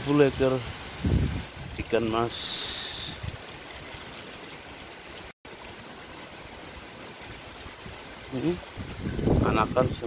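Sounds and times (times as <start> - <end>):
running water: 0.0 - 10.0.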